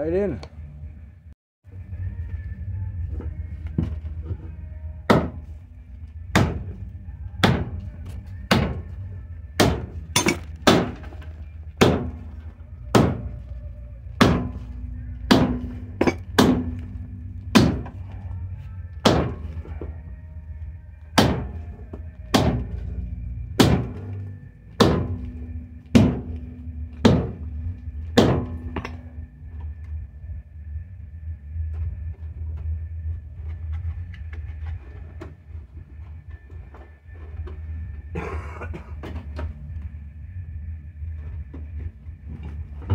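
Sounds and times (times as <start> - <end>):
metal bar hammering: 5.1 - 5.5, 6.3 - 6.8, 7.4 - 7.8, 8.5 - 8.9, 9.6 - 11.2, 11.8 - 13.4, 14.2 - 14.7, 15.3 - 18.0, 19.0 - 19.6, 21.2 - 22.9, 23.6 - 24.2, 24.8 - 29.2.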